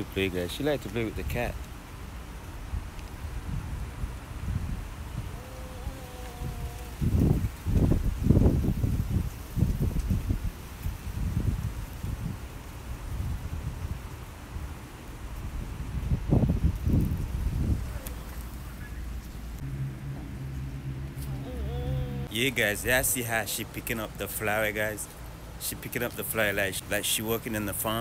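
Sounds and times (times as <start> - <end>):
wind buffeting microphone: 2.6 - 19.7.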